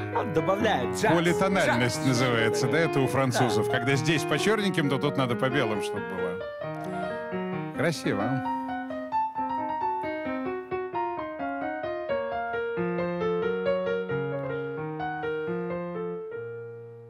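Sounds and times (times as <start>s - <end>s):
piano duet: 0.0s - 17.0s.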